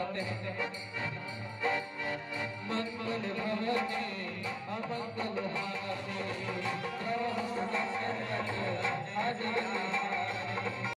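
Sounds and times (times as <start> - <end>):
men singing devotional song: 0.0 - 10.9.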